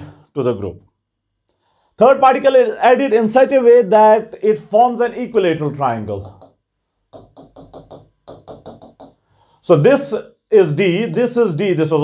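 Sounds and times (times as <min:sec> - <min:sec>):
stylus tapping touchscreen: 0:05.1 - 0:09.3, 0:10.8 - 0:11.4.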